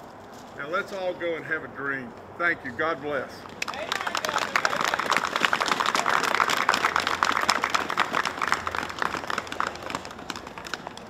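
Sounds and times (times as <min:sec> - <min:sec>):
crowd applauding: 0:03.5 - 0:11.0.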